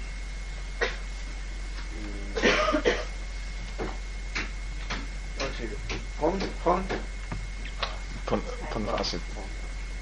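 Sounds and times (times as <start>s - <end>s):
person coughing: 0.8s - 1.0s, 2.4s - 3.2s.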